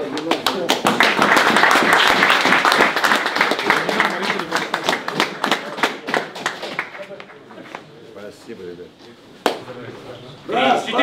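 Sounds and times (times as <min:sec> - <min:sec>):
sharp hand clap: 0:00.0 - 0:07.8, 0:09.4 - 0:09.7
quiet chatter of voices: 0:03.6 - 0:11.0.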